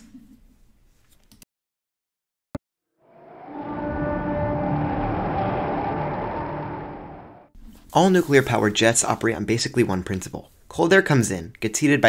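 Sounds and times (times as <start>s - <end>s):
rumbling drone with held tones: 3.0s - 7.5s.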